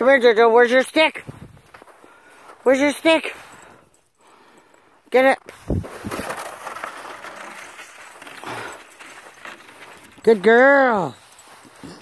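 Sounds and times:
footsteps on crusted snow: 0.0s - 3.8s, 5.4s - 12.0s.

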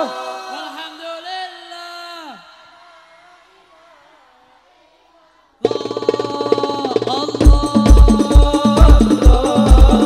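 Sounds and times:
devotional song: 0.0s - 4.5s, 5.5s - 10.0s
devotional song with drums: 5.6s - 10.0s.

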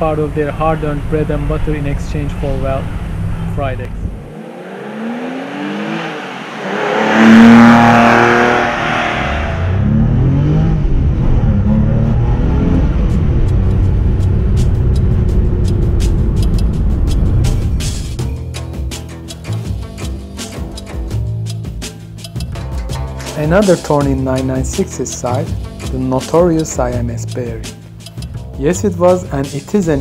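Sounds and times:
car engine revving: 0.0s - 28.4s
music with ticking beat: 13.2s - 30.0s.

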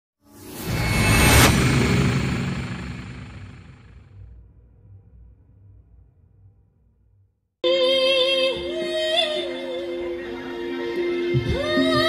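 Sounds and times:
deep noisy logo swell: 0.3s - 7.2s
low rumble: 0.4s - 7.4s.

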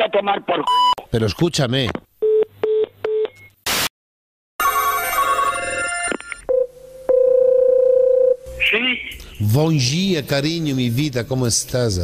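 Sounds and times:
ringback tone: 4.6s - 8.4s
telephone ringing: 4.6s - 8.4s.

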